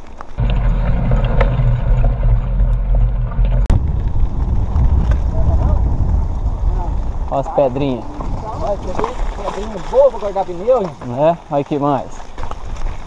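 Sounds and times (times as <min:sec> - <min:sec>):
bike rattling over stones: 0:00.0 - 0:13.0
wind buffeting microphone: 0:00.4 - 0:10.8.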